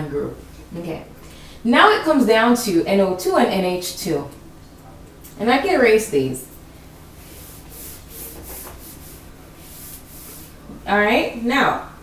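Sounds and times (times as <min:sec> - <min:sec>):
eraser rubbing on whiteboard: 0:07.2 - 0:10.6.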